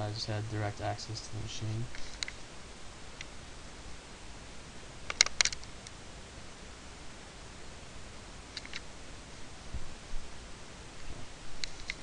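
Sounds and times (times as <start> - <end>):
faint room hiss: 0.0 - 12.0
computer mouse clicks: 5.1 - 6.0, 8.5 - 8.9.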